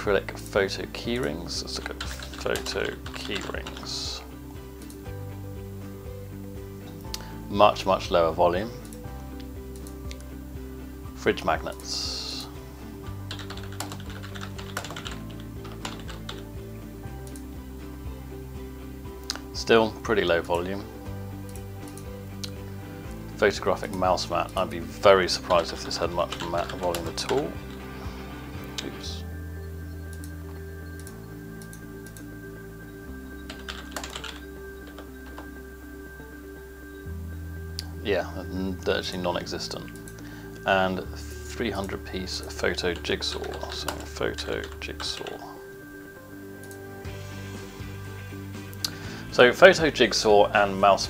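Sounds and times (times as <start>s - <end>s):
background music: 0.0s - 51.0s
keyboard typing clicks: 1.8s - 4.0s, 13.3s - 16.5s, 17.2s - 17.5s, 30.0s - 32.3s, 33.4s - 35.6s, 43.0s - 45.4s.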